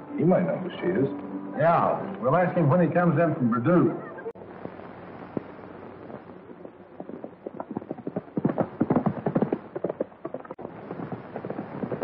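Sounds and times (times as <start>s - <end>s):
galloping horse hoofbeats: 5.3s - 12.0s.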